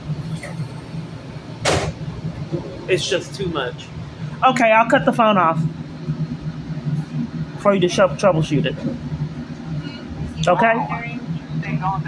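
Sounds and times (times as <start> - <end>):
light-rail car equipment hum: 0.0 - 12.0.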